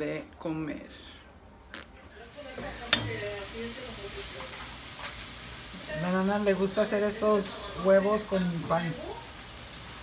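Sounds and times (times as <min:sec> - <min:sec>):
egg sizzling in skillet: 0:02.2 - 0:10.0.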